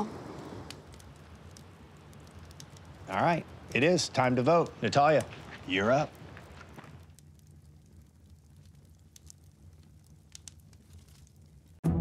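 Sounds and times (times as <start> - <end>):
fire crackling: 0.0 - 11.8
low steady hum: 0.0 - 12.0.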